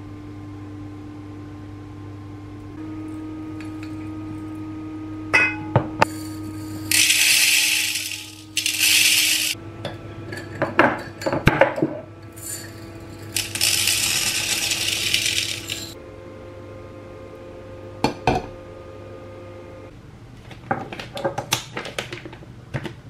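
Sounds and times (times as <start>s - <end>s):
glass clinking: 5.4s - 9.6s
dry grains pouring into pot: 6.1s - 9.6s, 12.4s - 16.0s.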